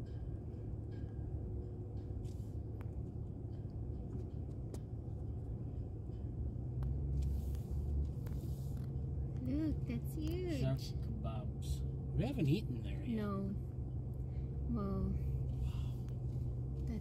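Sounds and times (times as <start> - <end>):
car engine and road noise: 0.0 - 17.0.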